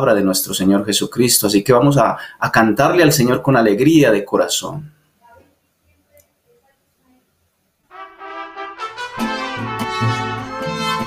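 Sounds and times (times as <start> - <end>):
mariachi band playing: 7.9 - 11.0
trumpets: 7.9 - 11.0
bass line: 8.0 - 11.0.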